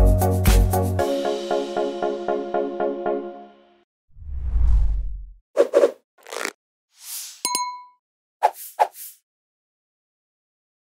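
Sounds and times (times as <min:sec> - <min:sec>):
low whoosh: 0:04.2 - 0:05.3
bell-like ding: 0:07.5 - 0:08.0.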